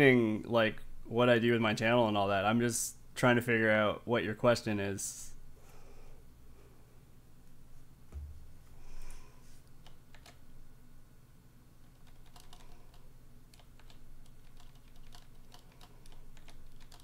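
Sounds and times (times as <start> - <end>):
typing on computer keyboard: 9.8 - 10.4, 11.9 - 17.0.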